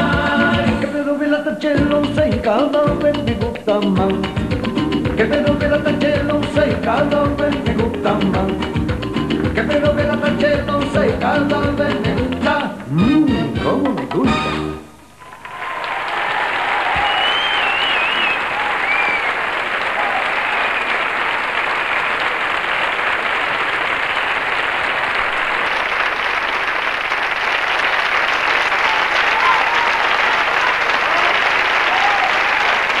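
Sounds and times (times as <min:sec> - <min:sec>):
shouts: 0:15.2 - 0:19.2, 0:19.9 - 0:20.6, 0:28.8 - 0:32.6
audience applauding: 0:15.2 - 0:33.0
whistles: 0:16.9 - 0:19.4.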